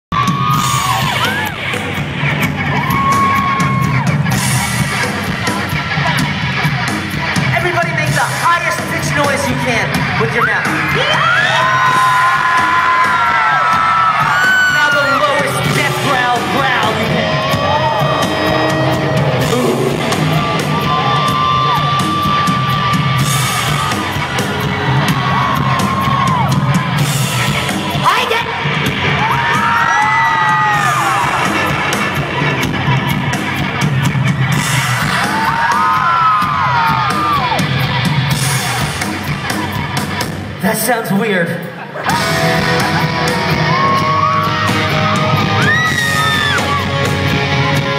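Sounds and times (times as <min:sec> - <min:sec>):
crowd yelling and squealing: 0:00.1 - 0:47.9
live rock band: 0:00.1 - 0:47.9.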